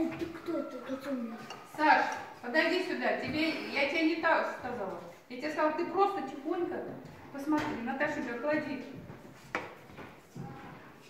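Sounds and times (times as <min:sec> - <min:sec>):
classroom background noise: 0:00.0 - 0:11.0.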